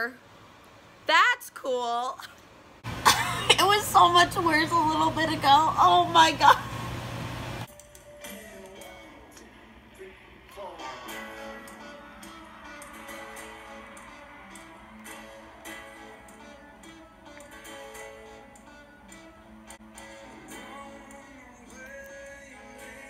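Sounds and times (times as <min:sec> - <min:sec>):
song with guitar: 0:10.5 - 0:23.0.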